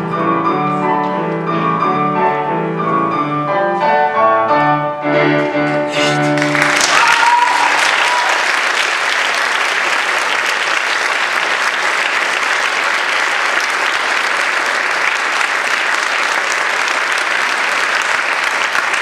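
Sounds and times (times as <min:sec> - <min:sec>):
audience applauding: 0:05.7 - 0:19.0.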